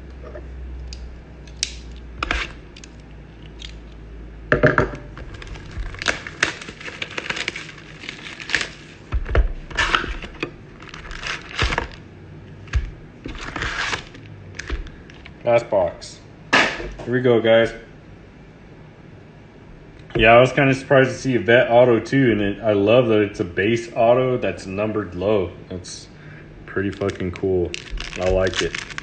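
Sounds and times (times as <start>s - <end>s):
foil packs crinkling: 5.2s - 12.0s, 12.7s - 15.3s, 26.7s - 29.0s.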